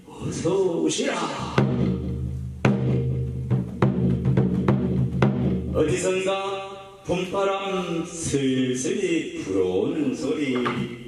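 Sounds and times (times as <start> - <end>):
drum struck with a stick: 1.4 - 6.1.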